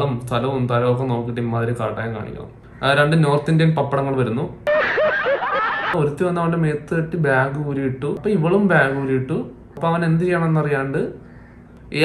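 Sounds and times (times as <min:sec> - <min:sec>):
man laughing: 0:04.7 - 0:06.0.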